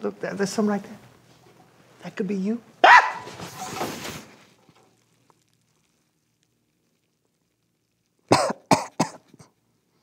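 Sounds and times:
man coughing: 8.3 - 9.5.

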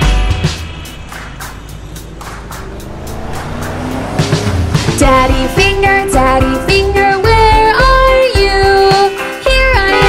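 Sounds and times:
cartoon car engine: 0.0 - 8.9
background music: 0.0 - 10.0.

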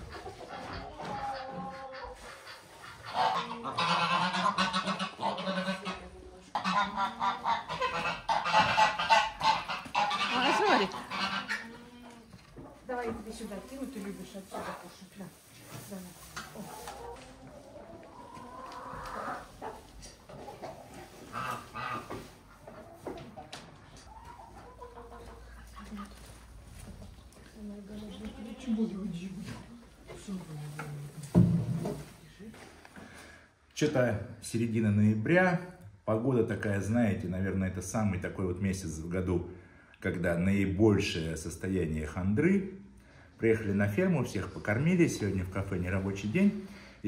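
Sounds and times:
geese honking: 0.0 - 11.9, 20.5 - 22.7
chickens clucking: 0.0 - 33.3.

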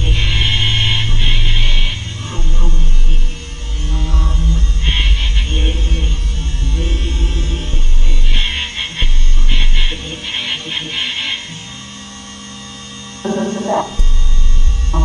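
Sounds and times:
stuttering bursts of high noise: 0.0 - 10.2
deep bass drone: 0.0 - 10.3, 13.2 - 15.0.

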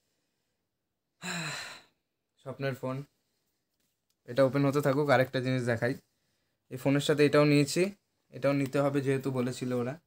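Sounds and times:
man sighing: 1.2 - 2.0.

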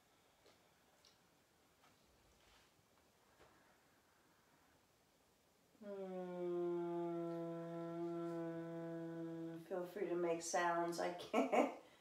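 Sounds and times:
woman humming a low note: 5.8 - 9.9.

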